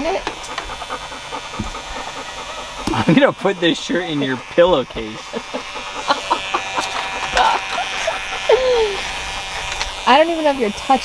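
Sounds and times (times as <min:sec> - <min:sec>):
electric beard clippers buzzing: 0:00.0 - 0:11.0.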